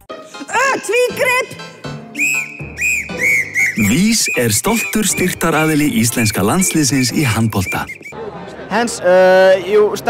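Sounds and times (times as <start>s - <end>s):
sports whistle blasts: 2.2s - 8.1s.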